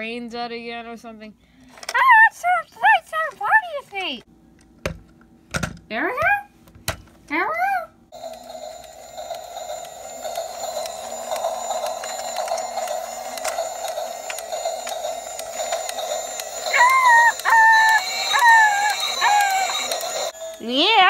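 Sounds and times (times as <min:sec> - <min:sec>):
toy train electronic buzz: 0:08.1 - 0:21.0.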